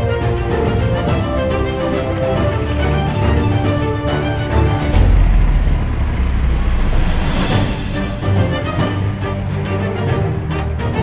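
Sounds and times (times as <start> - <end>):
wind and road noise rumble: 0.2 - 11.0.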